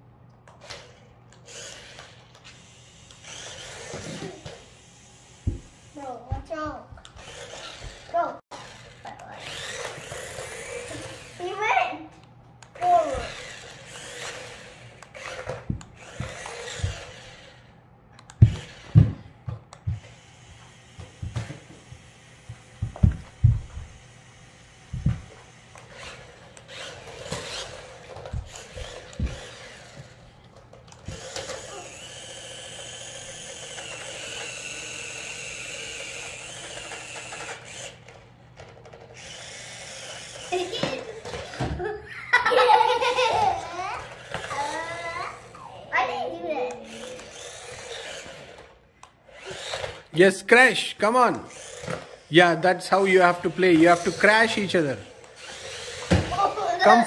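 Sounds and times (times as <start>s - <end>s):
toy electric motors whirring: 0.5s - 57.0s
children's voices: 10.8s - 12.2s, 42.8s - 47.4s, 56.2s - 57.0s.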